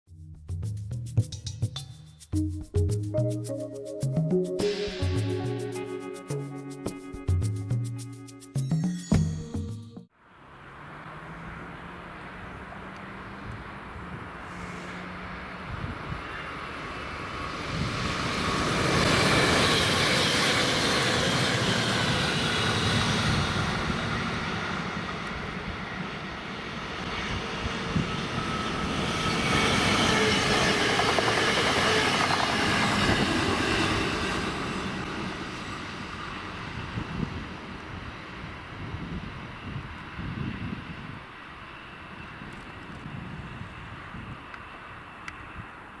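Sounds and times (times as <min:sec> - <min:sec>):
electric trains passing: 0:03.2 - 0:08.6, 0:10.1 - 0:46.0.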